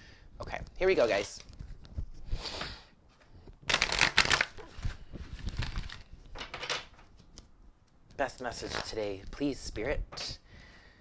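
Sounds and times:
cards being shuffled: 3.6 - 7.5.

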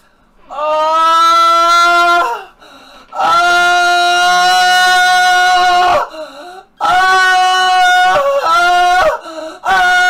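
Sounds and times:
man wailing in pain: 0.5 - 2.5, 3.2 - 6.2, 6.8 - 10.0.

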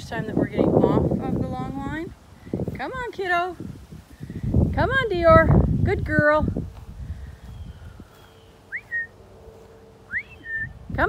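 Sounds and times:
person whistling: 8.7 - 9.1, 10.1 - 10.8.

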